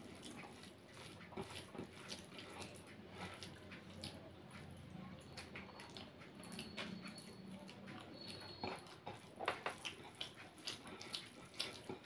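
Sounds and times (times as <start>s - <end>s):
fingers squishing rice: 0.0s - 12.0s
wet chewing: 0.0s - 12.0s.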